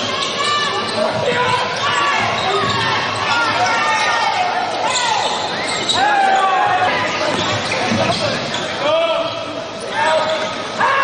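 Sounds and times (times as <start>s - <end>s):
sneakers squeaking on hardwood: 0.0s - 4.2s, 6.6s - 8.8s
players' voices: 0.0s - 11.0s.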